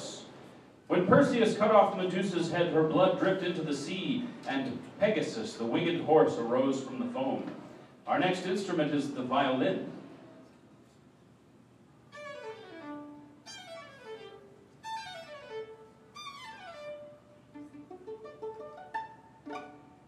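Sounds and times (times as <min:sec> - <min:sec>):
solo violin: 0:12.1 - 0:20.0.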